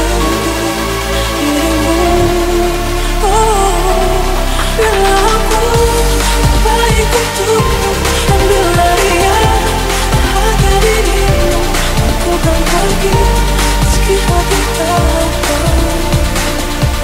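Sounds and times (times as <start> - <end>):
techno kick drum: 5.8 - 17.0.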